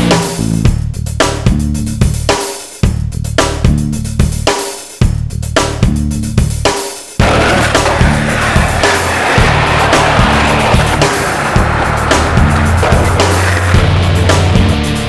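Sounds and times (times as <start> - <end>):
music with repeating bass line: 0.0 - 8.8, 11.6 - 15.0
skateboard wheels rolling on pavement: 7.2 - 15.0.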